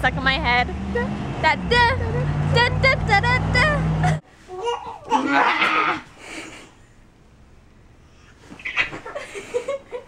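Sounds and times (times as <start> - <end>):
baby squealing and babbling: 4.5 - 6.1.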